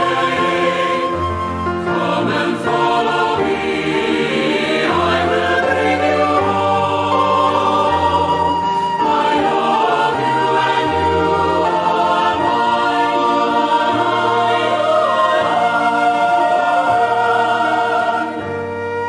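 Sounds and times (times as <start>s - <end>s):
choir singing a slow hymn: 0.0s - 19.0s.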